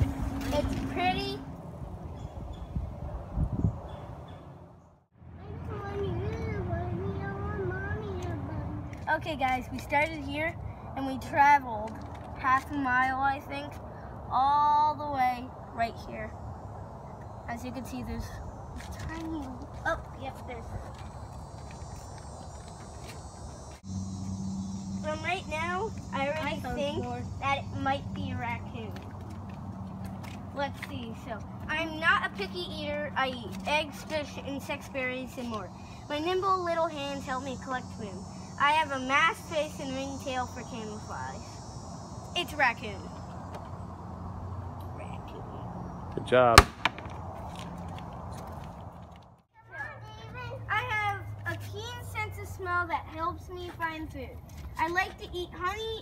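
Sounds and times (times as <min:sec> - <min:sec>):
high insect chorus: 0:15.6 - 0:47.4.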